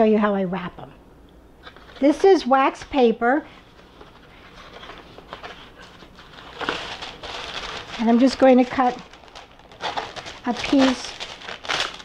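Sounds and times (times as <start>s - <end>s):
wax paper rustling: 3.5s - 12.0s.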